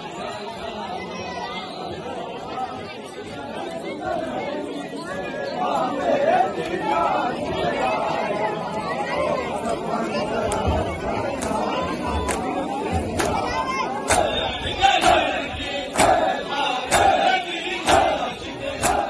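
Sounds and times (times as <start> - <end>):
crowd of men talking and calling out: 0.0 - 19.0.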